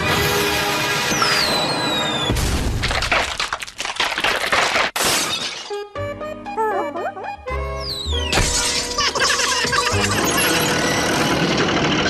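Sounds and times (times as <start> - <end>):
crashing and shattering effects: 0.0 - 5.8
falling whistle: 1.1 - 2.4
cartoon music: 6.0 - 11.0.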